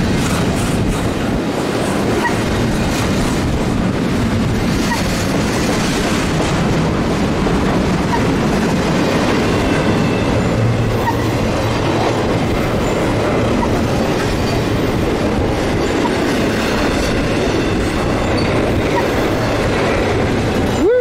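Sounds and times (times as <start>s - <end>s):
freight train wheels rumbling: 0.0s - 21.0s.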